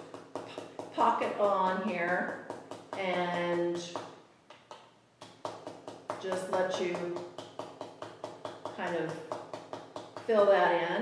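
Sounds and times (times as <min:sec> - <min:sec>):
stencil brush tapping paper: 0:00.0 - 0:10.6.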